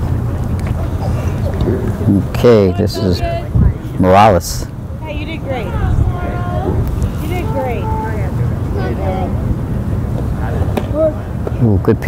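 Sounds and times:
distant voices calling out: 0:00.0 - 0:11.6
wind buffeting microphone: 0:00.0 - 0:12.0.

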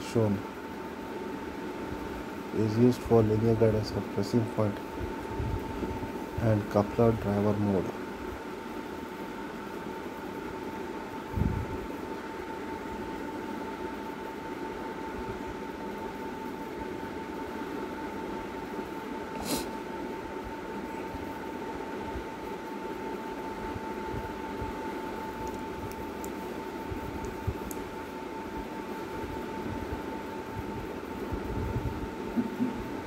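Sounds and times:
high-pitched hum: 0:23.5 - 0:33.0.

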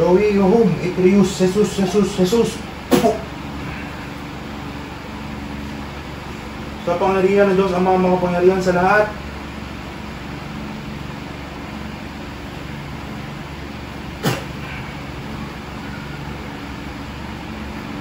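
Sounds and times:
electric fan whirring: 0:00.0 - 0:18.0.

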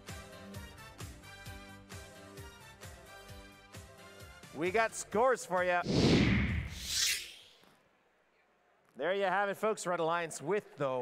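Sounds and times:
whooshing transition effect: 0:05.8 - 0:07.5.

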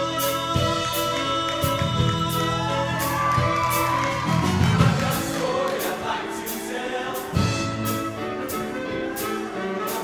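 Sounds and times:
choir singing: 0:04.4 - 0:10.0.

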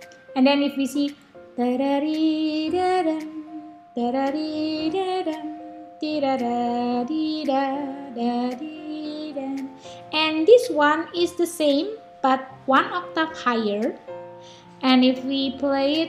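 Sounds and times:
piano melody: 0:00.0 - 0:16.0
woman singing: 0:00.4 - 0:14.0, 0:14.8 - 0:16.0.

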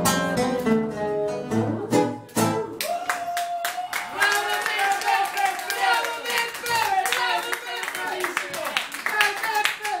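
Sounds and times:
audience applauding: 0:02.8 - 0:10.0.

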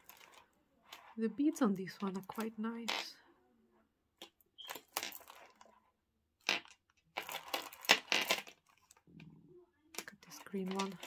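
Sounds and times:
glass beads rattling and rustling: 0:00.0 - 0:03.1, 0:04.6 - 0:05.8, 0:06.4 - 0:09.0, 0:10.0 - 0:11.0.

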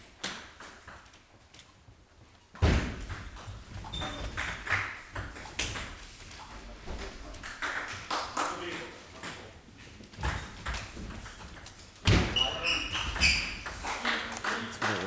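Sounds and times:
voices in a hall: 0:12.2 - 0:15.0.

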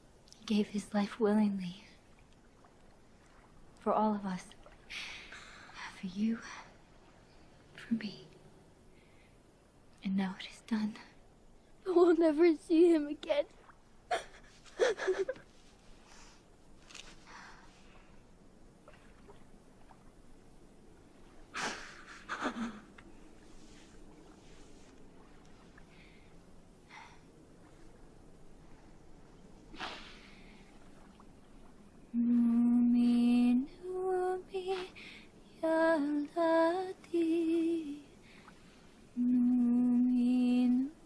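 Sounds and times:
faint steady hiss: 0:00.0 - 0:41.0
woman humming: 0:32.2 - 0:35.0, 0:39.2 - 0:41.0.

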